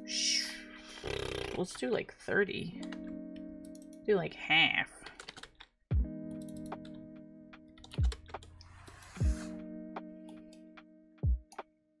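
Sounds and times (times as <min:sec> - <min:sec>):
background music with chords: 0:02.6 - 0:04.2, 0:05.9 - 0:11.8
computer keyboard typing: 0:05.0 - 0:05.7.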